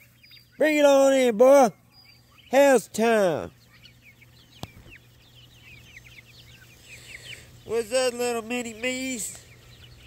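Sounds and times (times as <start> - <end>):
chickens chirping: 0.0 - 10.0.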